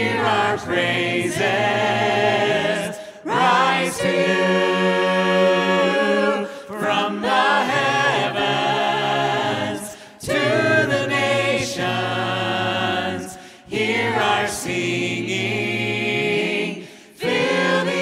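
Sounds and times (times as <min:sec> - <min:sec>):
voices singing a cappella: 0:00.0 - 0:18.0.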